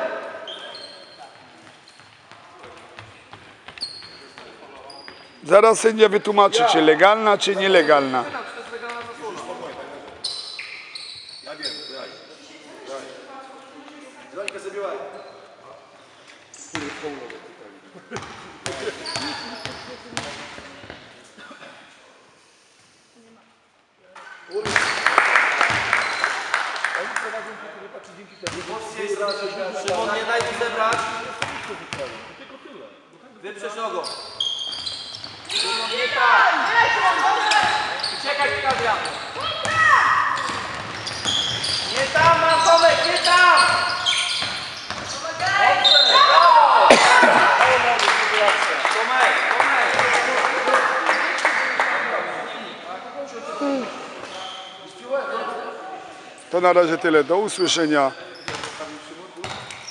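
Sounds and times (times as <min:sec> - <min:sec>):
sneaker squeaks on court floor: 0:00.4 - 0:05.5, 0:10.1 - 0:12.2, 0:15.1 - 0:15.6, 0:18.2 - 0:21.0, 0:24.2 - 0:25.0, 0:28.3 - 0:32.1, 0:34.0 - 0:36.2, 0:37.2 - 0:46.3, 0:54.2 - 0:55.0, 0:57.5 - 0:59.9
basketball bouncing on court: 0:25.7 - 0:25.9, 0:38.5 - 0:42.4, 0:43.7 - 0:45.5, 0:59.4 - 0:59.8.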